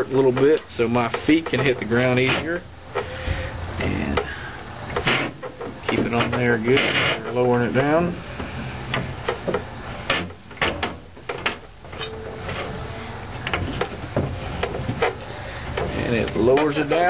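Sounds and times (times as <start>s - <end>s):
metal clicks knocks and creaks: 0.0s - 3.2s, 4.9s - 12.7s, 13.3s - 17.0s
steady low hum: 0.0s - 17.0s.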